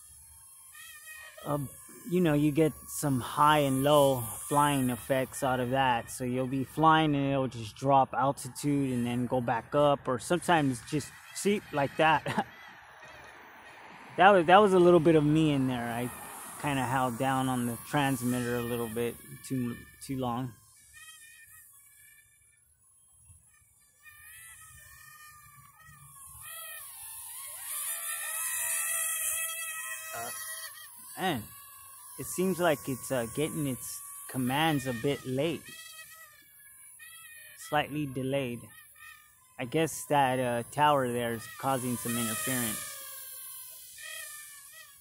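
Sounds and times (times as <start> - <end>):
toy drone motors whining: 0.0 - 7.2, 8.3 - 45.0.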